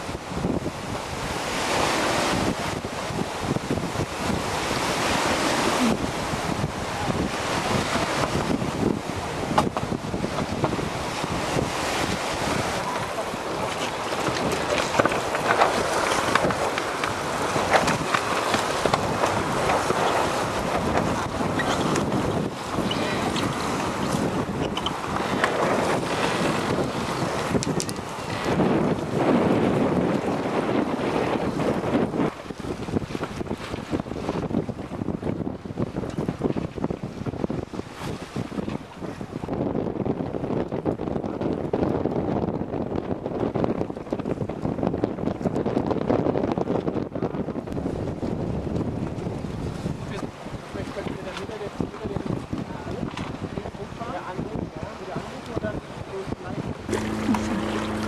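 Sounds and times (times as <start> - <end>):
choppy water: 0.0 - 58.0
gusty wind buffeting microphone: 0.0 - 58.0.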